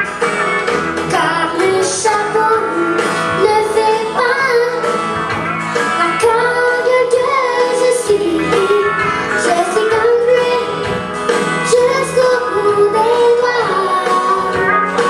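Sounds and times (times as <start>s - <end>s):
instrumental accompaniment: 0.0s - 15.0s
girl singing into a microphone: 1.1s - 5.0s, 6.0s - 10.9s, 11.6s - 15.0s.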